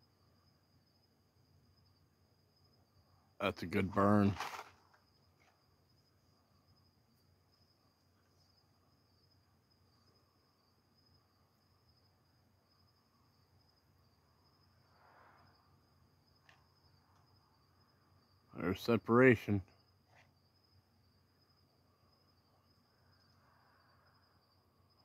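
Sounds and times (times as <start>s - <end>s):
crickets chirring: 0.0s - 25.0s
soft hiss: 4.0s - 25.0s.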